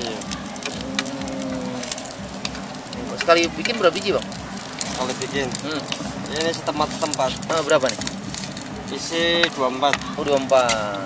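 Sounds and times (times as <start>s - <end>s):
food sizzling in a pan: 0.0s - 11.0s
metal skewer clicking on pan: 1.8s - 8.7s.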